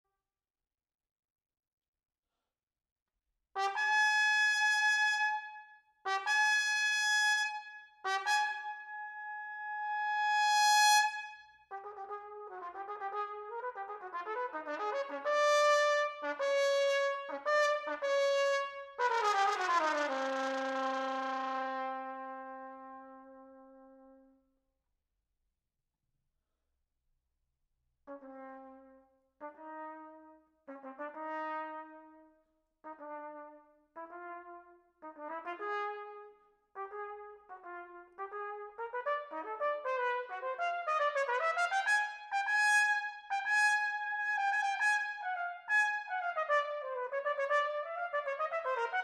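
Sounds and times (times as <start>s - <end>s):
cornet playing: 46.1s - 49.0s.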